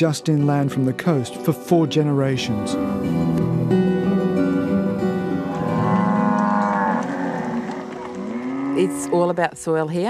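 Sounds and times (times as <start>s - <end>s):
cattle mooing: 5.3s - 9.4s.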